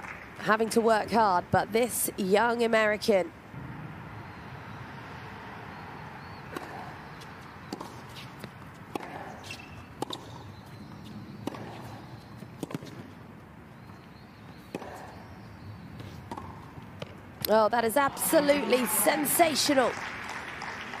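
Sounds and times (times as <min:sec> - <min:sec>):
low background noise: 0:00.0 - 0:21.0
tennis ball bounces: 0:03.6 - 0:19.9.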